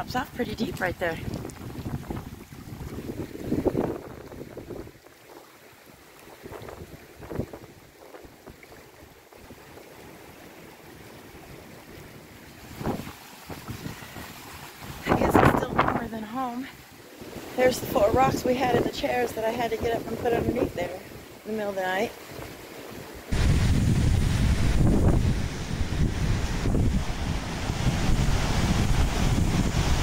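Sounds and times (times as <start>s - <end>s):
gusty wind buffeting microphone: 0.0s - 5.4s, 6.3s - 9.9s, 12.6s - 30.0s
waves lapping pebble shore: 0.0s - 30.0s.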